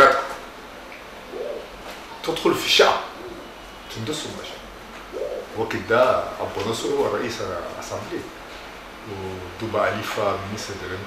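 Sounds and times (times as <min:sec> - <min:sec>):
man speaking: 0:05.2 - 0:08.3.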